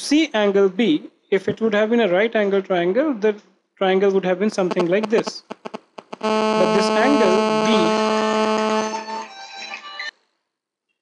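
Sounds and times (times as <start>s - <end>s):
buzzing electronic tone: 4.7s - 9.2s.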